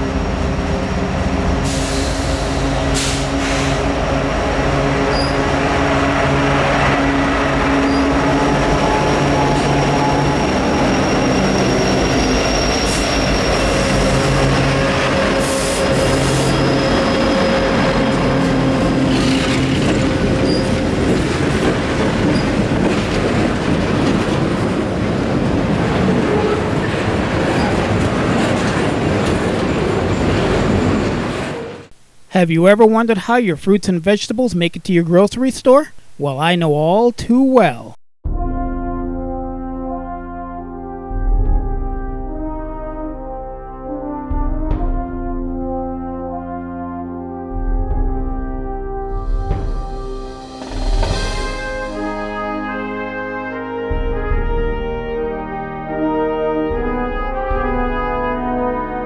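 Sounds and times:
diesel locomotive engine drone: 0:00.0 - 0:32.0
train wheel squeal: 0:05.1 - 0:05.5, 0:07.8 - 0:20.9, 0:22.2 - 0:22.6.

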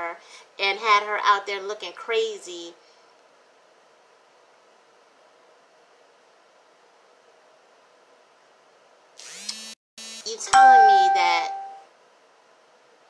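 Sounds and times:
electric fan humming: 0:09.2 - 0:11.6.

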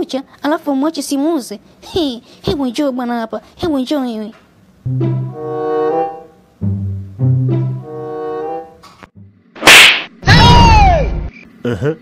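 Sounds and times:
background music note: 0:04.9 - 0:09.4
whip-like swish: 0:09.6 - 0:10.1.

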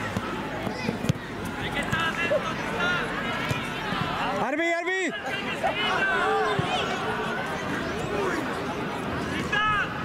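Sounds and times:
loud held shout: 0:04.2 - 0:07.2
people shouting: 0:05.0 - 0:07.5.

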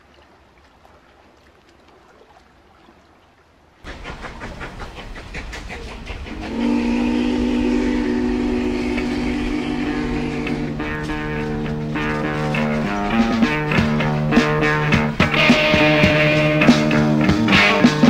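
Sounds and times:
rapid clattering rumble: 0:03.9 - 0:18.0
horn-like sustained chord: 0:06.4 - 0:17.0.

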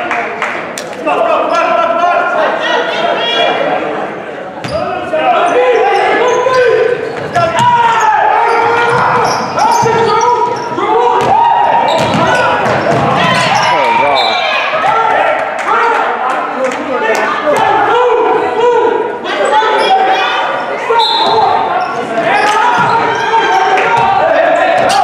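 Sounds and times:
voices: 0:00.0 - 0:25.0.

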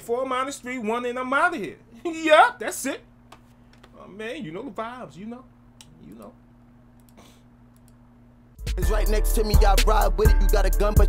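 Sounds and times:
computer mouse clicks: 0:07.0 - 0:08.0.

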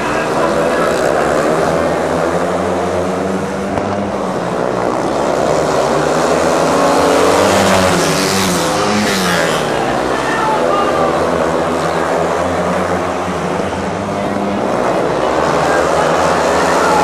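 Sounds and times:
motorbike passing by: 0:00.0 - 0:12.9
motorbike engines racing: 0:00.0 - 0:17.0.

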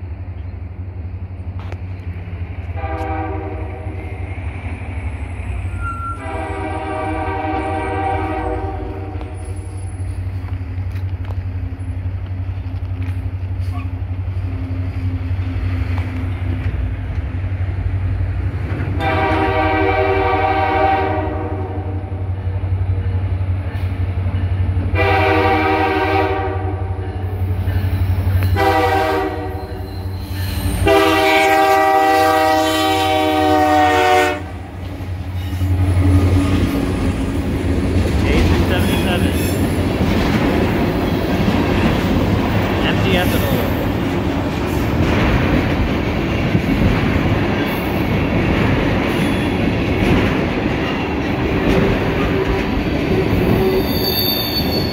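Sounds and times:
diesel locomotive rumble: 0:00.0 - 0:54.9
locomotive air horn blasts: 0:02.8 - 0:04.0, 0:05.8 - 0:09.4, 0:19.0 - 0:22.2, 0:25.0 - 0:27.0, 0:28.6 - 0:29.8, 0:30.8 - 0:34.6.

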